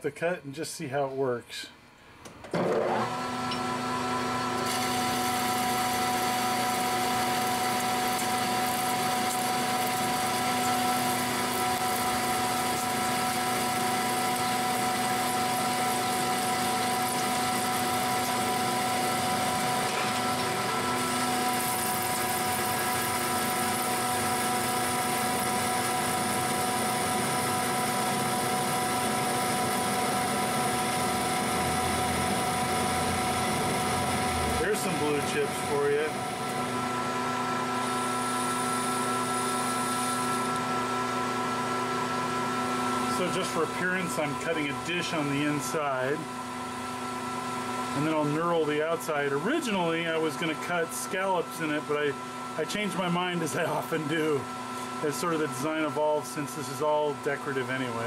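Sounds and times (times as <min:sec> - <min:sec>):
metal lathe whining: 0:02.6 - 0:58.0.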